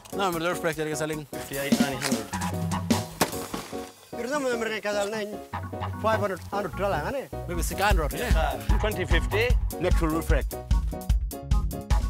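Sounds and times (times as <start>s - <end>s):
background music: 0.0s - 12.0s
man speaking: 0.2s - 2.4s, 4.2s - 10.5s
blade chopping into wood: 3.1s - 3.9s.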